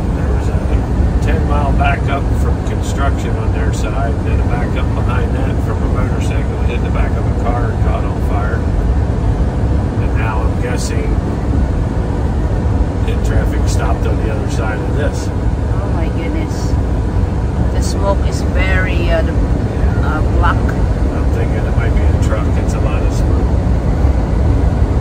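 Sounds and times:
engine and road noise in cab: 0.0 - 25.0.

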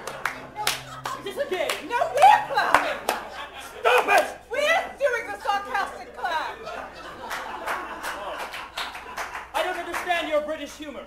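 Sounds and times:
hand claps: 0.0 - 3.3, 3.9 - 4.3, 7.3 - 10.4.

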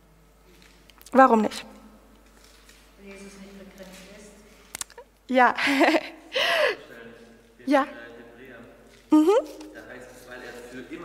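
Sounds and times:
woman speaking: 1.1 - 1.9, 3.0 - 4.5, 5.3 - 6.0, 7.7 - 7.9, 9.1 - 9.6
woman laughing: 5.6 - 6.8, 9.1 - 9.6.

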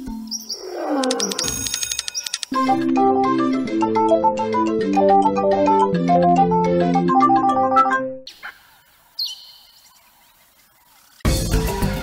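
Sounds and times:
high bird-like chirp: 0.2 - 2.4, 9.2 - 10.2.

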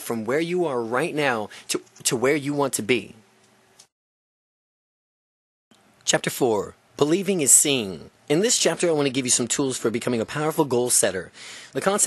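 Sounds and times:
faint room hiss: 0.0 - 3.9, 5.7 - 12.0.

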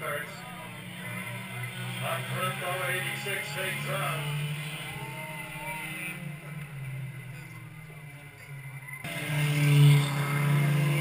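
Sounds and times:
stock car engines racing: 0.0 - 11.0.

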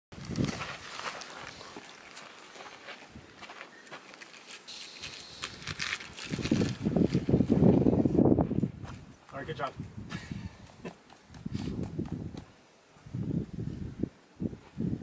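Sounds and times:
shoes and hands tapping on rock: 10.6 - 12.5
rough scraping on rock: 11.4 - 12.2.

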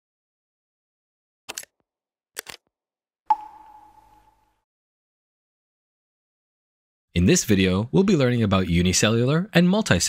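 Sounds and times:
bright ding: 3.3 - 4.5.

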